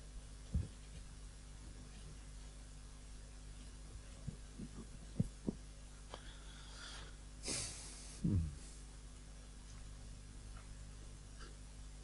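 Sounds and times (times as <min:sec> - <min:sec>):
microphone handling thumps: 0:00.5 - 0:01.1, 0:04.2 - 0:05.6.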